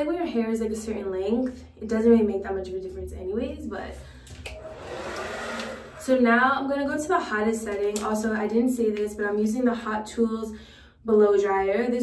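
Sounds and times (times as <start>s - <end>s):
hair dryer running: 4.3s - 6.2s.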